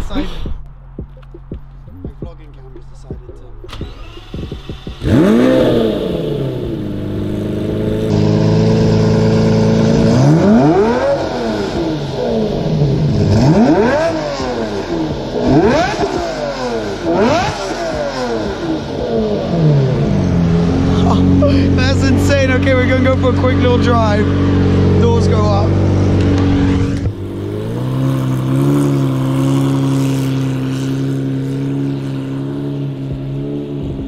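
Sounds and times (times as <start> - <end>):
car engine idling and revving: 0.0 - 34.0.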